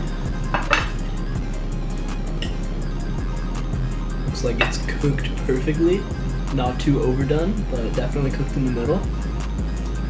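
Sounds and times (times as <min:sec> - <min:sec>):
background music with bass: 0:00.0 - 0:10.0.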